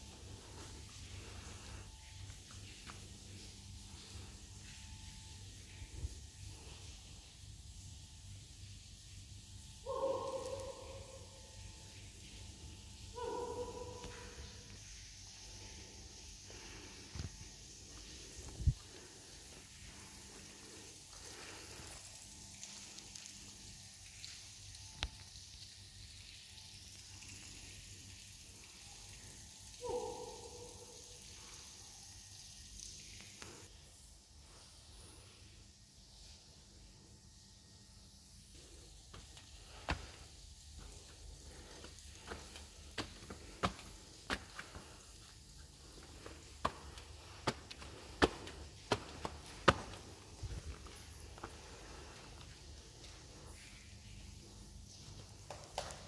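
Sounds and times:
faint steady hiss: 0:00.0 - 0:56.0
footsteps on hard walkway: 0:39.1 - 0:53.3.

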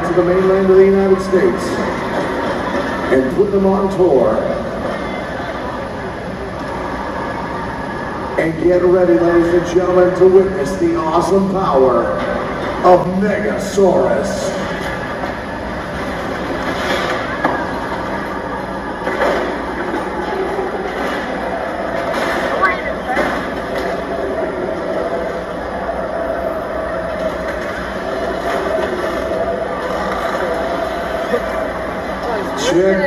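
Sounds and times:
crowd voices: 0:00.0 - 0:33.0.

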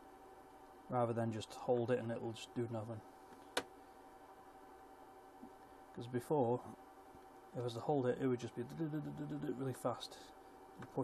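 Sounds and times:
faint steady whine: 0:00.0 - 0:11.0.

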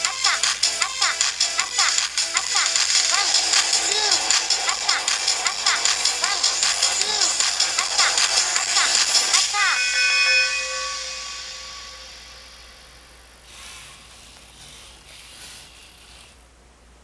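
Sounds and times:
held electronic chord: 0:08.4 - 0:13.4
faint servo motor whirring: 0:13.5 - 0:16.4.

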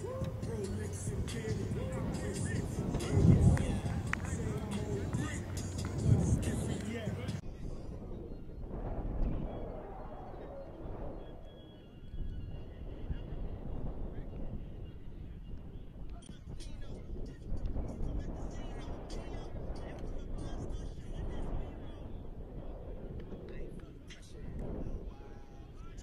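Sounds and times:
people talking indistinctly: 0:00.0 - 0:07.8
steady low rumble: 0:00.0 - 0:26.0.

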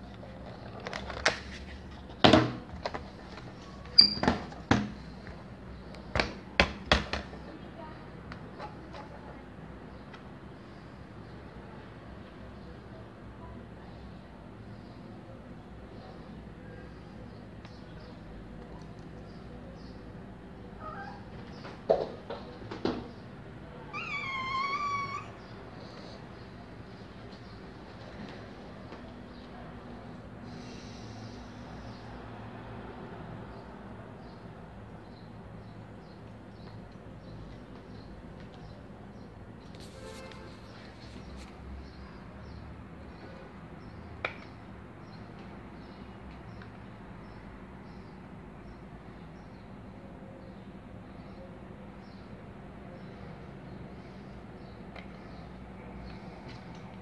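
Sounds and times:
cat meowing: 0:23.9 - 0:25.5.

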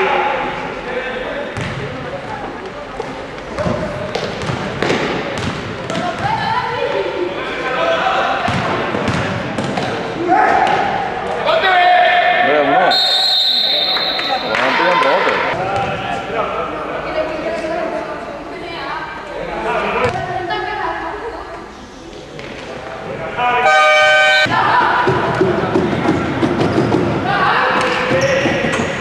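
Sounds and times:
basketball bouncing on court: 0:01.6 - 0:01.9, 0:03.5 - 0:06.5, 0:08.5 - 0:09.9
referee whistle: 0:12.9 - 0:14.6, 0:23.6 - 0:24.5.

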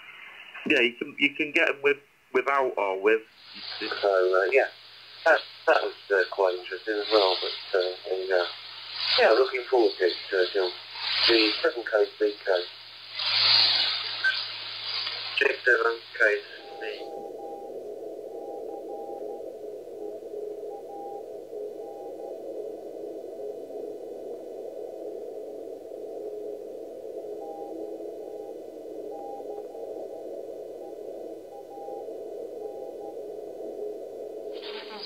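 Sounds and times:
radio static: 0:00.0 - 0:35.0
morse code tone: 0:15.4 - 0:22.5, 0:27.3 - 0:35.0.

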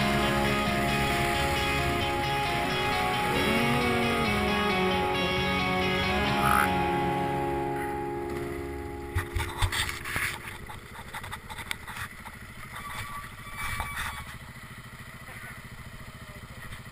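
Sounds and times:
guitar music: 0:00.0 - 0:10.7
motorcycle engine running slowly: 0:00.0 - 0:16.9
bike clattering over stony track: 0:09.1 - 0:14.4.

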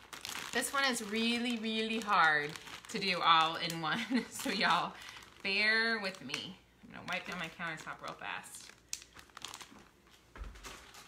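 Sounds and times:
crinkling and rustling: 0:00.0 - 0:11.0.

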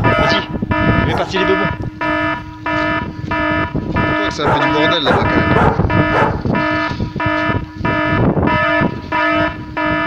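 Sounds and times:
electronic alarm buzzing blasts: 0:00.0 - 0:10.0.

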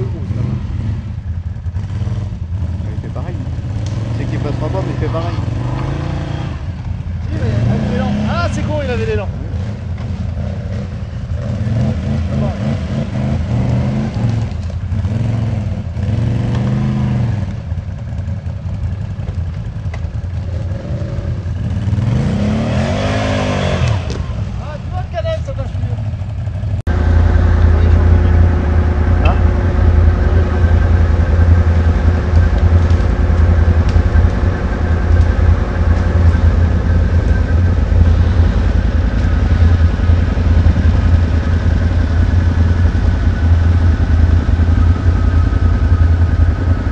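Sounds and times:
quad bike engine idling: 0:00.0 - 0:22.8, 0:23.9 - 0:46.9
quad bike engine revving: 0:00.0 - 0:46.9.

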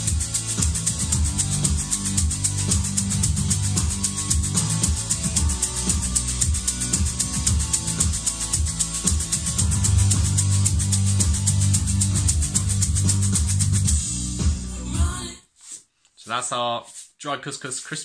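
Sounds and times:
shaker rattling: 0:00.0 - 0:14.1
backing music: 0:00.0 - 0:15.4.

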